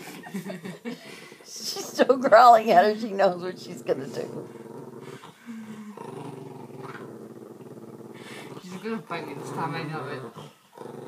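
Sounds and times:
small dog growling: 0:02.3 - 0:11.0.

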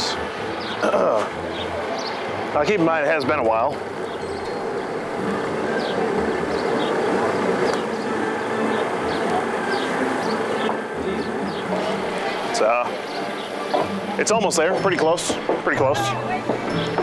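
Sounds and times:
indistinct voices: 0:00.0 - 0:17.0.

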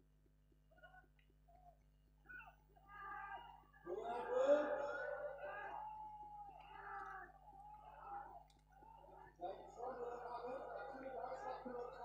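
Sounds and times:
people shouting and calling: 0:02.3 - 0:12.0.

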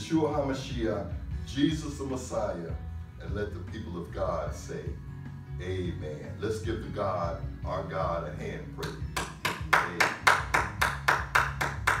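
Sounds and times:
person clapping hands: 0:08.8 - 0:12.0.

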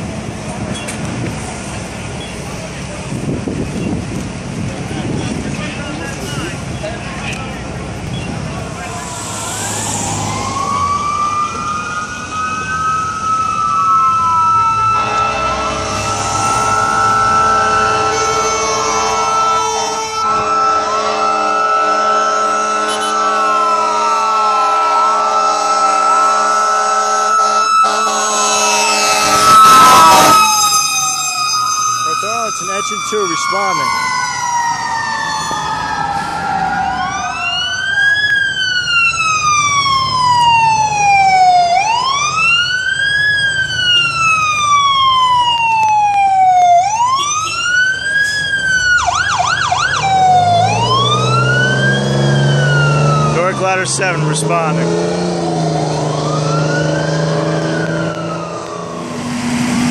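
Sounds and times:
fire engine siren wailing: 0:00.0 - 0:59.9
air horn blast: 0:14.9 - 0:30.8.

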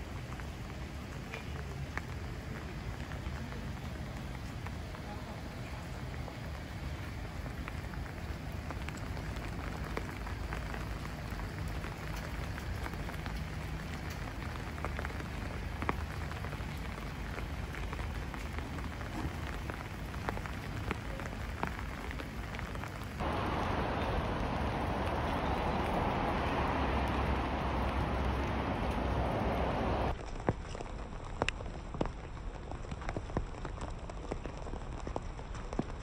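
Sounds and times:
raindrop ticks: 0:00.0 - 0:36.0
steady rain falling: 0:00.0 - 0:36.0.

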